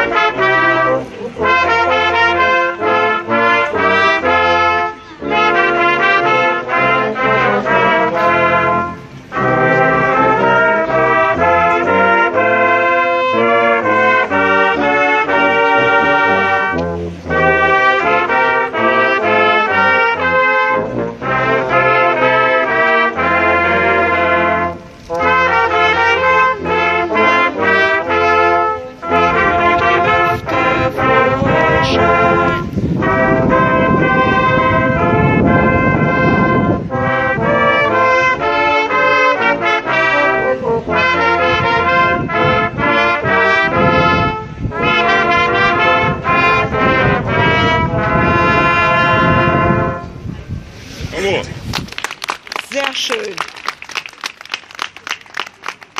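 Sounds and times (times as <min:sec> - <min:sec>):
brass choir playing chords: 0:00.0 - 0:50.3.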